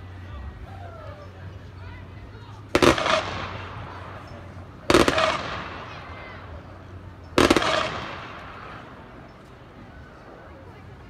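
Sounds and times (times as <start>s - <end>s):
rifle volleys with echo: 2.8s - 4.3s, 4.9s - 6.0s, 7.4s - 8.8s.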